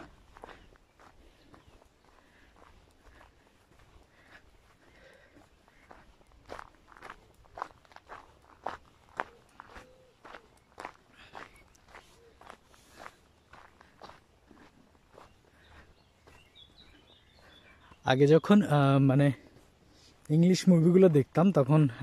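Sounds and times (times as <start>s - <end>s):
footsteps on gravel: 0.0s - 22.0s.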